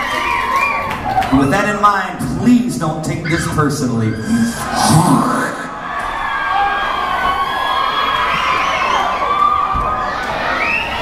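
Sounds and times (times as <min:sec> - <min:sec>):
concert crowd cheering and screaming: 0:00.0 - 0:02.4, 0:03.0 - 0:11.0.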